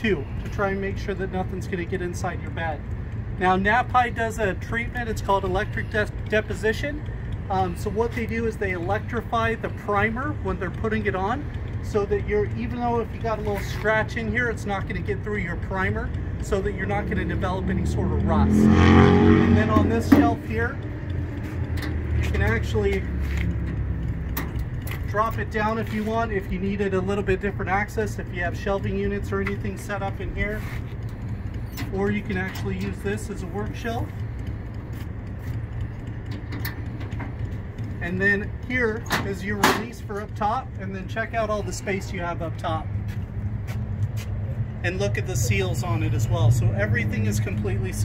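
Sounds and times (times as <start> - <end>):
sharp metal clicks and rattle: 0.0 - 18.5, 19.5 - 44.1
steady low hum: 0.0 - 48.0
steady low rumble: 0.0 - 48.0.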